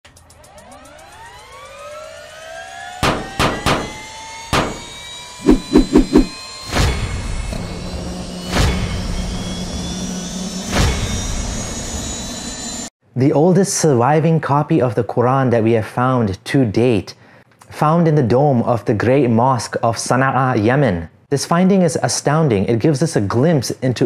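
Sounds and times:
heavy impact hits: 0:03.0 - 0:04.9
steady low hum: 0:03.0 - 0:06.4
rising whoosh: 0:03.9 - 0:06.4.

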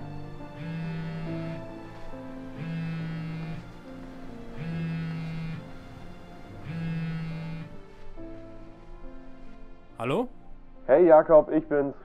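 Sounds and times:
soft background music: 0:00.0 - 0:12.0
phone vibrating buzz: 0:00.6 - 0:01.7, 0:02.6 - 0:03.7, 0:04.5 - 0:07.8.

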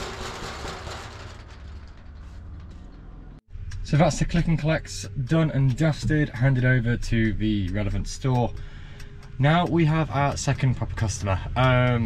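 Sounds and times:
steel roller shutter rattling: 0:00.0 - 0:03.2
low steady rumble: 0:00.0 - 0:12.0.

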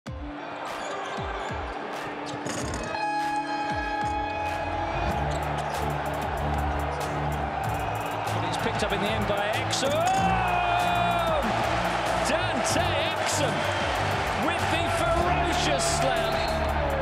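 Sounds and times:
arena crowd noise: 0:00.1 - 0:17.0
music with heavy bass: 0:04.9 - 0:17.0.

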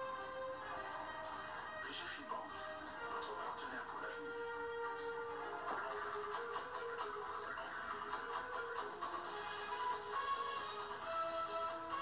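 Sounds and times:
music from television speaker: 0:00.0 - 0:12.0.

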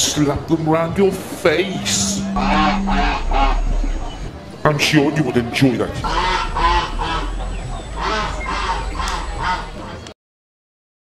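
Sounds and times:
ducks quacking: 0:06.0 - 0:10.1.

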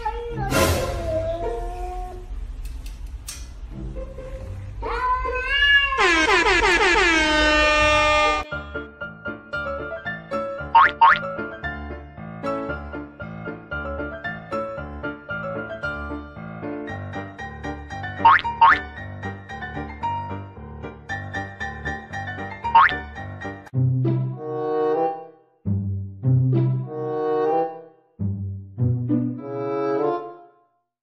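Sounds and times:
background music: 0:00.0 - 0:02.5, 0:03.2 - 0:05.3, 0:07.9 - 0:30.7
cat meowing: 0:04.9 - 0:06.4
comedy falling pitch sound effect: 0:05.9 - 0:08.4, 0:18.2 - 0:18.9.

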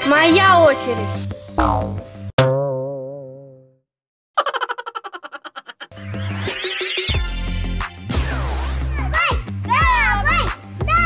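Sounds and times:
cartoon twang sound effect: 0:01.6 - 0:03.7.

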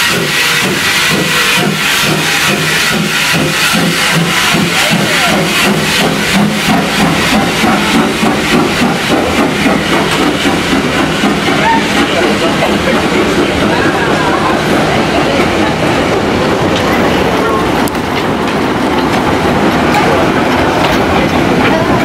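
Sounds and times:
steam hissing: 0:00.0 - 0:22.0
steam locomotive exhaust chuffs: 0:00.0 - 0:22.0
train coaches rolling: 0:00.0 - 0:22.0.

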